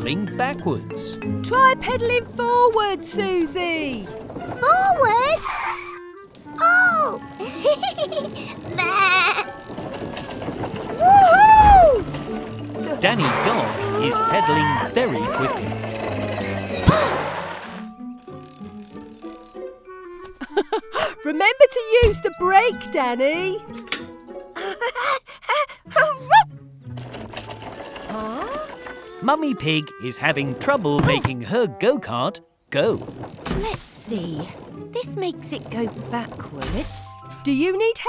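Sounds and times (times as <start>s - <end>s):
soft background music: 0.0s - 25.1s, 25.8s - 38.0s
cartoon child laughing: 6.6s - 9.6s, 20.4s - 21.1s, 24.6s - 26.5s
go-kart rattling: 6.6s - 19.6s, 26.9s - 29.4s, 32.7s - 37.1s.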